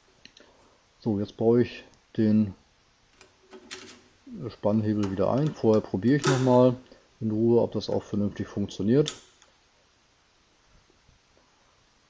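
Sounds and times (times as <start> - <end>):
person speaking: 1.0 - 2.6, 4.2 - 9.2.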